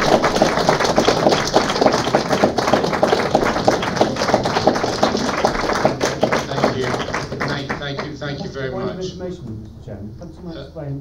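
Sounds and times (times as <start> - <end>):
audience applauding: 0.0 - 8.9.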